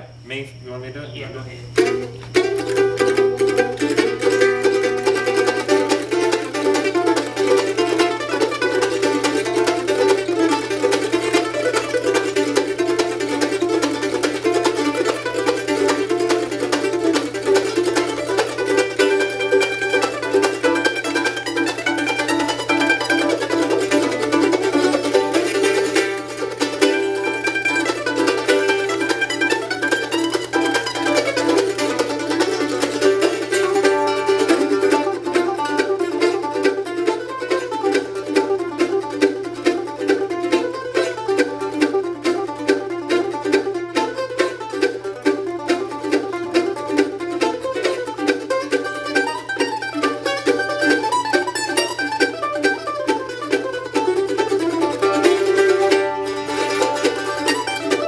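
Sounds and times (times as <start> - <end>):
mandolins playing bluegrass: 1.5 - 58.0.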